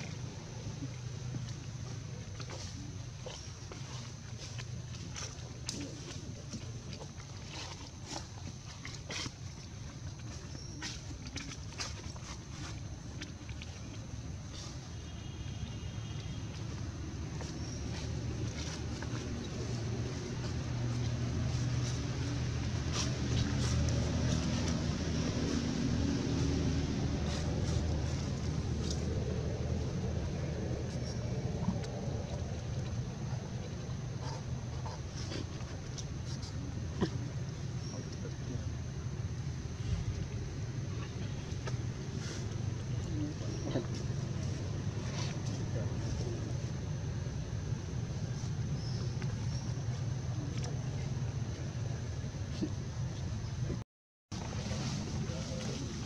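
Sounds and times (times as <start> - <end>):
low motor drone: 15.4 - 53.8.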